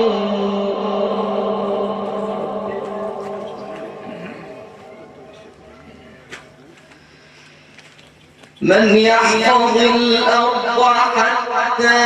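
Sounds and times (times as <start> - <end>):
man chanting through loudspeakers: 0.0 - 6.6, 8.6 - 12.0.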